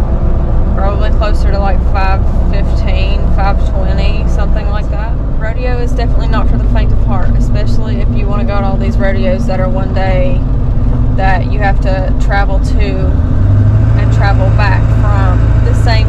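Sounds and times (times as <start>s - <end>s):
vehicle rumble on the road: 0.0s - 16.0s
woman talking: 0.8s - 10.4s, 11.2s - 13.2s, 14.0s - 16.0s.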